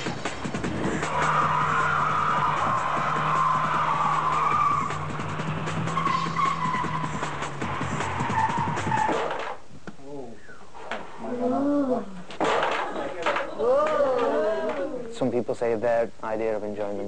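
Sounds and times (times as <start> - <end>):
music playing: 0.0 - 9.4
car tyres squealing: 0.9 - 9.6.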